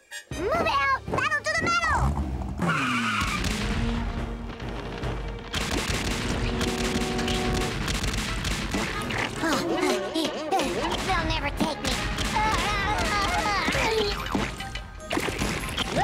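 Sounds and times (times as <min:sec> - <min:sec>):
background music: 0:00.0 - 0:16.0
rattle of rapid fire: 0:03.3 - 0:09.2.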